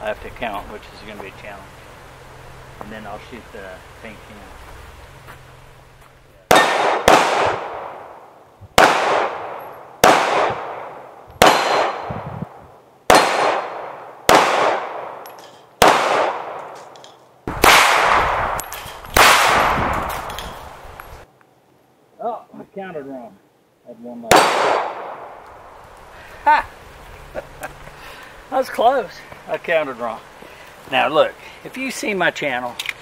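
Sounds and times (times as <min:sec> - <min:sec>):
pistol shots: 0:06.5 - 0:08.2, 0:08.8 - 0:12.2, 0:13.1 - 0:16.9, 0:17.5 - 0:20.5, 0:24.3 - 0:25.4.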